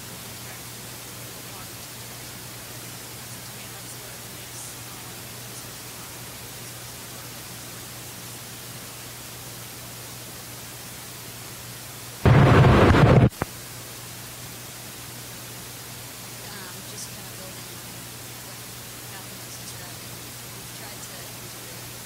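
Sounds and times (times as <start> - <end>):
microphone hiss and hum: 0.0 - 22.0
microphone handling rumble: 12.3 - 13.4.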